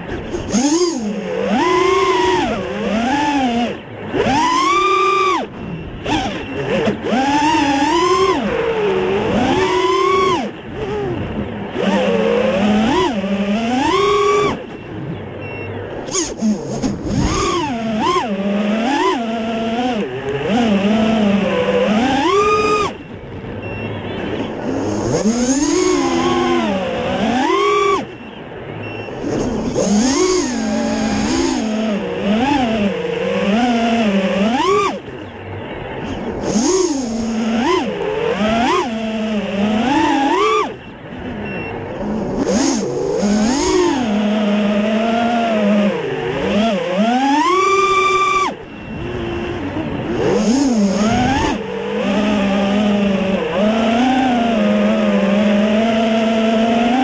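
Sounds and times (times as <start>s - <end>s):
drone motors and propellers whining: 0.0s - 57.0s.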